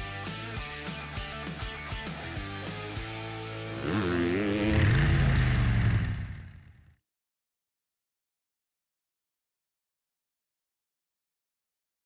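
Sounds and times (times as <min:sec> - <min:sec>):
motorcycle engine revving: 0:03.6 - 0:07.0.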